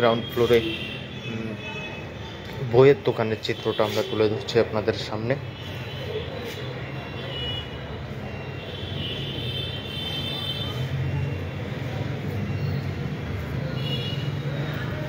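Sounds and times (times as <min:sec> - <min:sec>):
road traffic noise: 0:00.0 - 0:15.0.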